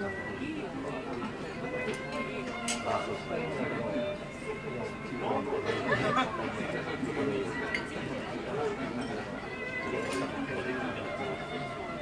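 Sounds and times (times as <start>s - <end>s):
background music: 0.0s - 12.0s
indistinct chatter of voices: 0.0s - 12.0s.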